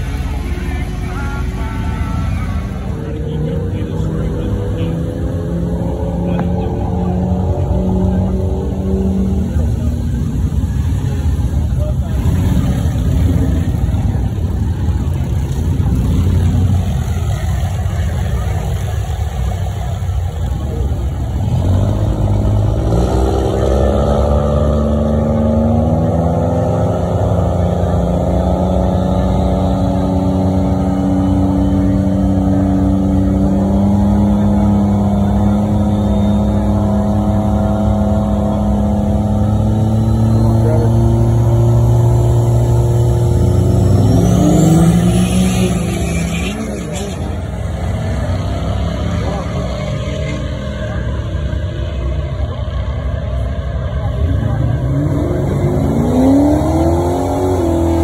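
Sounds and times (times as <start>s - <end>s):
diesel truck engines revving: 0.0s - 58.0s.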